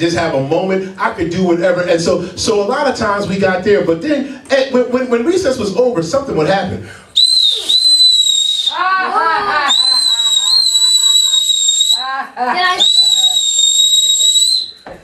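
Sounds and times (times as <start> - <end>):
whistle blasts: 7.2 - 8.8, 9.6 - 12.1, 12.8 - 15.0
voices: 8.7 - 13.7.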